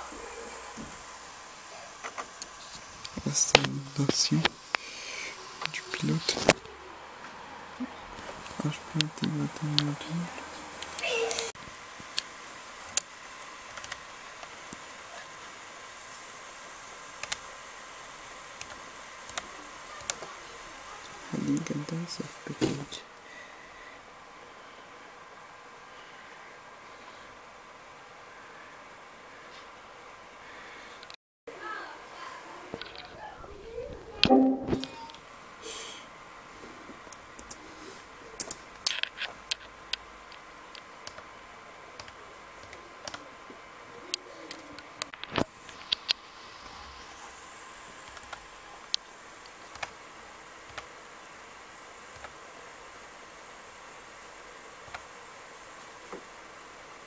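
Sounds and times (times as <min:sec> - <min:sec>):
faint electronic hiss: 0:00.0 - 0:31.8, 0:33.7 - 0:57.0.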